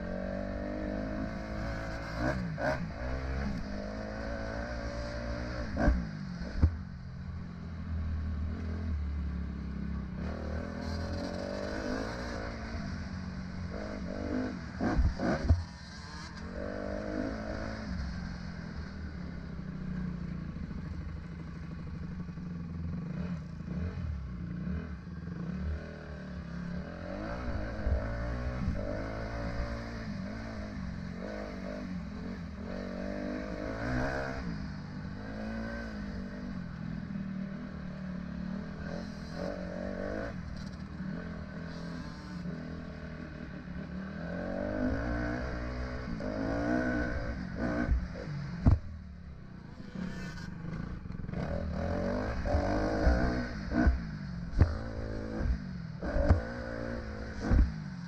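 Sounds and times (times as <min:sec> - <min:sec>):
dirt bike engine revving: 0:49.8 - 0:57.7.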